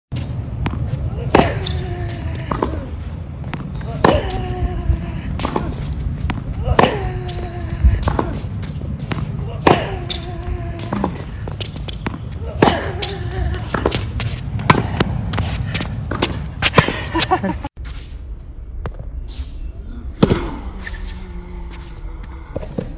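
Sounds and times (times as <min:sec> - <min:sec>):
racket hitting tennis ball: 0:00.2 - 0:04.6, 0:05.3 - 0:17.2
tennis ball bouncing: 0:00.2 - 0:17.2.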